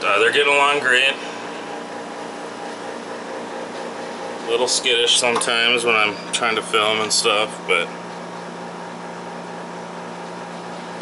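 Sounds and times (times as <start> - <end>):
aquarium air pump hum: 0.0 - 11.0.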